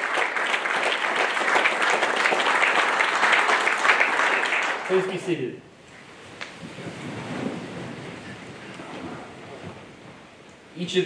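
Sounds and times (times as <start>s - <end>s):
people rustling in chairs: 5.9s - 10.6s.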